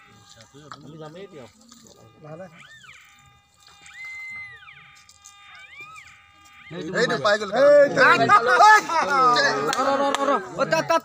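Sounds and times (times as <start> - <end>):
high mewing animal calls: 2.6 - 7.3.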